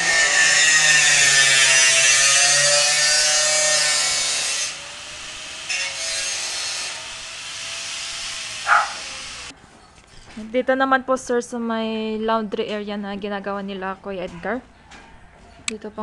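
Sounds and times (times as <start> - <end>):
angle grinder cutting metal: 0.0 - 9.5.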